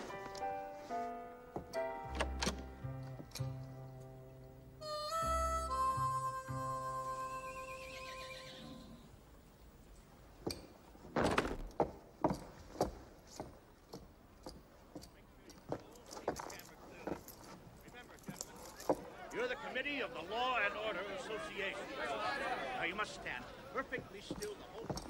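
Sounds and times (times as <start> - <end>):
horse whinnying: 7.8 - 9.1
irregular knocks and thuds: 10.4 - 14.6.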